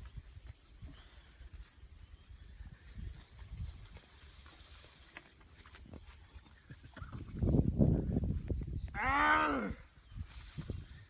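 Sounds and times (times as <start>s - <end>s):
wind rumble on microphone: 0.0s - 4.6s, 5.8s - 11.0s
grass and leaves rustling: 0.0s - 11.0s.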